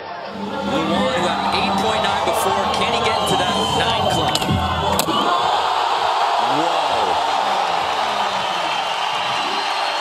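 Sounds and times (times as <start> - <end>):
large crowd cheering: 0.0 - 10.0.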